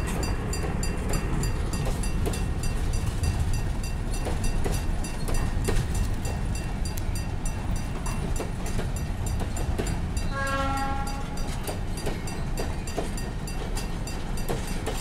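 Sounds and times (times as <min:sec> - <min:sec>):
freight train rumbling: 0:00.0 - 0:15.0
train horn: 0:10.3 - 0:11.6.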